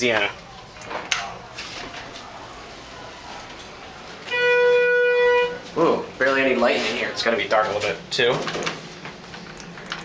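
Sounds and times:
elevator electronic signal tone: 4.3 - 5.7.

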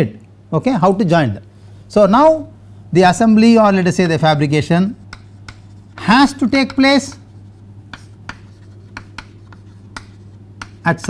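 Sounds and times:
steady low hum: 0.0 - 11.0
chalk tapping and scratching: 4.8 - 11.0.

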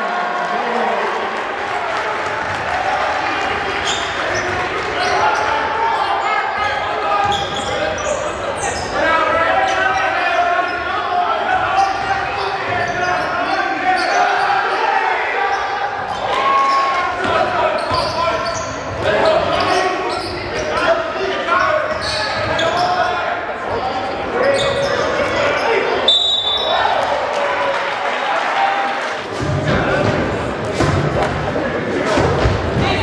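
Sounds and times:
voices of players and spectators: 0.0 - 33.0.

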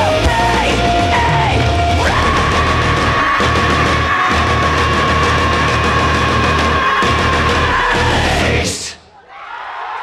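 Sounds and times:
bass line: 0.0 - 8.8
electric guitars: 0.0 - 8.8
person singing into microphone: 0.0 - 9.0.

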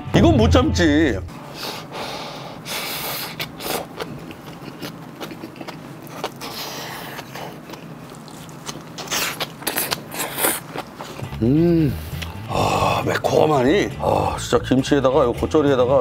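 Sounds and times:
wet chewing: 3.1 - 12.5
crunching cabbage: 3.2 - 11.4.

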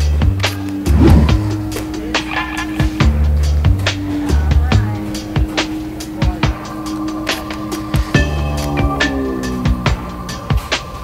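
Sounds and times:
background music with steady beat: 0.0 - 11.0
loud swoosh: 0.9 - 1.6.

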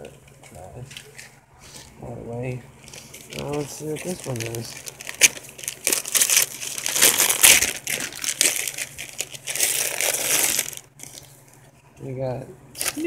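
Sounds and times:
wrapping paper tearing and crumpling: 2.8 - 11.3, 12.8 - 13.0.

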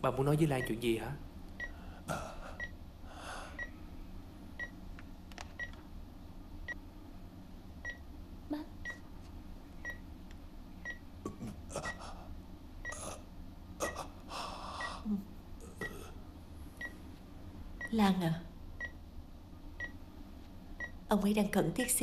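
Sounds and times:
patient monitor beeping: 0.4 - 0.8, 1.6 - 1.8, 2.6 - 2.8, 3.5 - 3.8, 4.6 - 4.8, 5.6 - 5.8, 7.8 - 8.1, 8.8 - 9.1, 9.8 - 10.1, 10.8 - 11.1, 11.9 - 12.1, 12.8 - 14.1, 14.7 - 15.1, 16.8 - 17.0, 17.8 - 18.0, 18.8 - 19.0, 19.8 - 20.0, 20.8 - 21.0.

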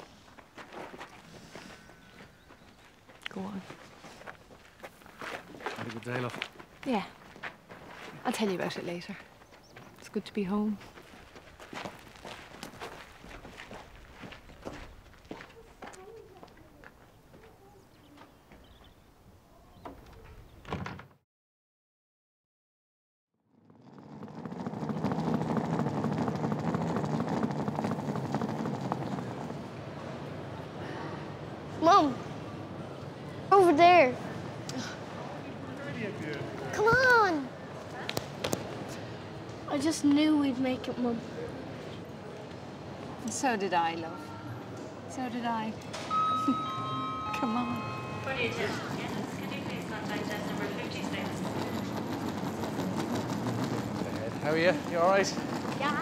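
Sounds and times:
suitcase rolling on tiled floor: 23.6 - 30.8, 45.5 - 56.0
busy airport hall noise: 24.6 - 56.0.

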